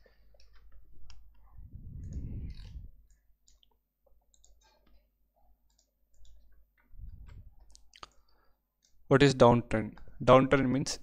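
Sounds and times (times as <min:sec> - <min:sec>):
computer mouse clicks: 0:00.3 - 0:05.0, 0:05.6 - 0:06.6.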